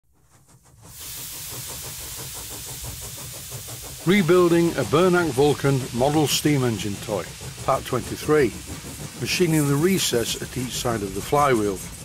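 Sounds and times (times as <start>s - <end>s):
steady hiss with fast pulsing: 0.2s - 12.0s.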